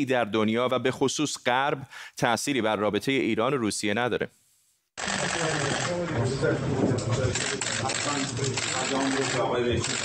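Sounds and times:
several voices talking: 5.0 - 10.0.

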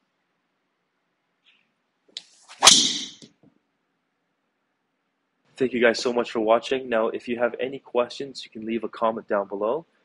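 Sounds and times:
swish building to sharp crack: 2.5 - 3.2.

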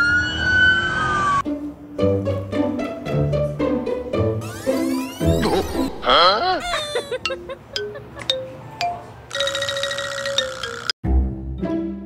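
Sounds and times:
steady ringing tone: 9.3 - 11.0.

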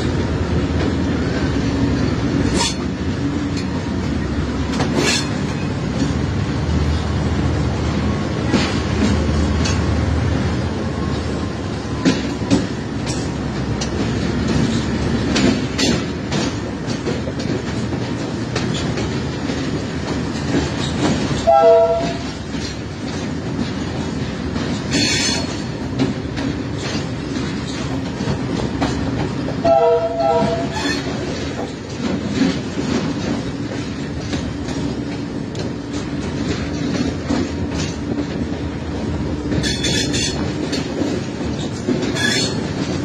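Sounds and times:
diesel locomotive engine rumble: 0.0 - 43.0
wheel clacks over rail joints: 0.0 - 43.0.

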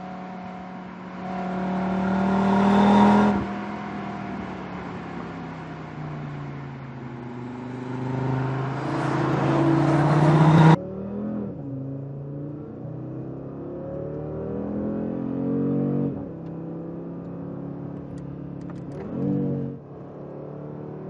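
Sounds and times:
car engine accelerating: 0.0 - 21.0
car passing by: 1.3 - 10.8.

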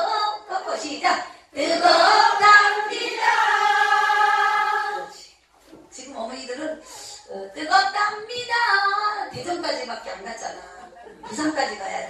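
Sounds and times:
group of voices singing: 1.6 - 5.2.

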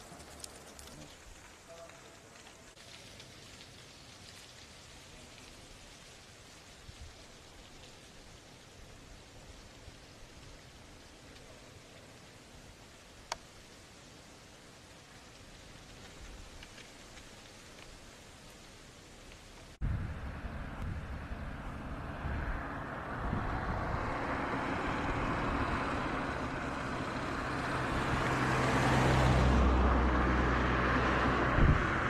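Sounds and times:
faint hiss: 0.0 - 19.8
vehicle engine running: 19.9 - 32.0.

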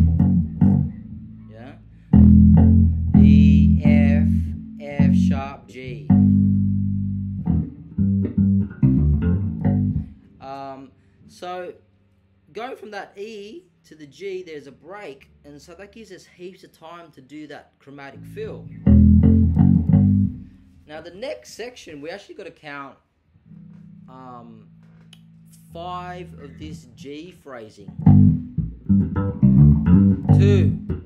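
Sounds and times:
electric bass guitar funk plucking: 0.0 - 10.3, 18.2 - 20.6, 27.9 - 31.0.

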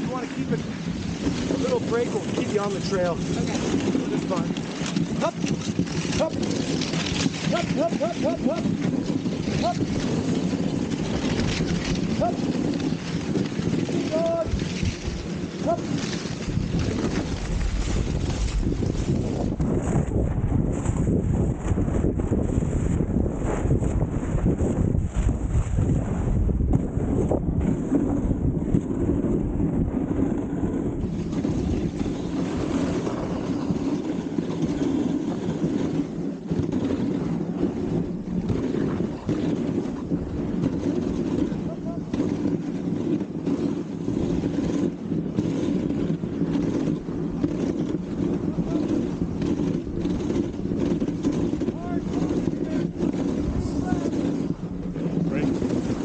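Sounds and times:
sled runners scraping on snow: 0.0 - 56.0
wind buffeting microphone: 0.0 - 56.0.

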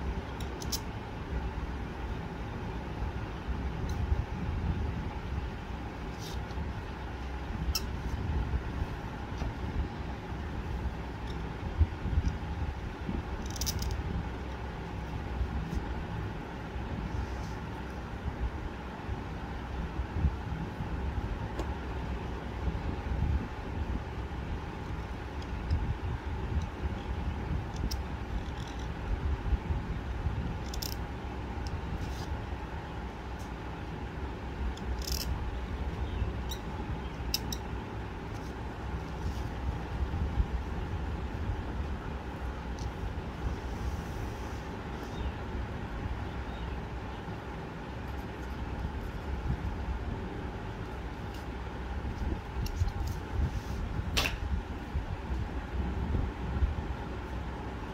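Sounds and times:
low background rumble: 0.0 - 57.9.

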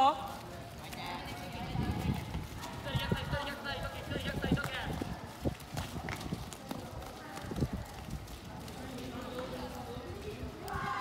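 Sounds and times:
footballs being kicked: 0.0 - 8.4
players running on dirt: 0.0 - 11.0.

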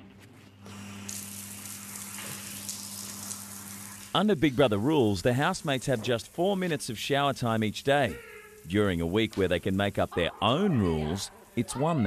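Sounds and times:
shower water hissing: 0.7 - 12.0.

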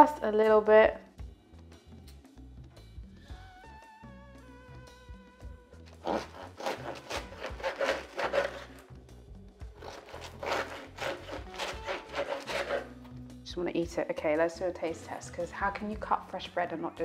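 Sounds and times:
background music: 0.0 - 17.0
bread knife sawing crust: 5.9 - 8.9, 9.8 - 13.1.

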